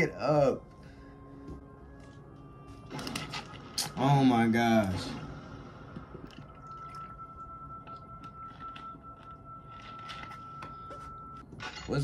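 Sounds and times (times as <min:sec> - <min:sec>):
soft music with held tones: 0:00.0 - 0:11.9.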